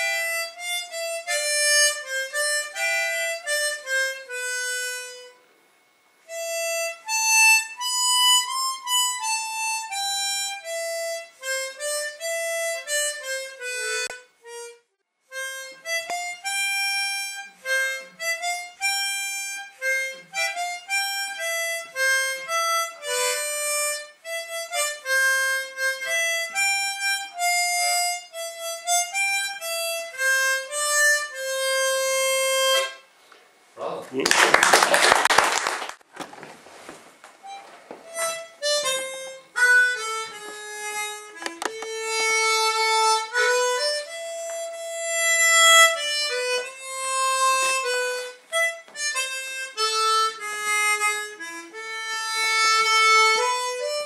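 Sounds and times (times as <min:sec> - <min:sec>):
harmonica melody: 0:00.0 - 0:34.0, 0:37.4 - 0:54.0.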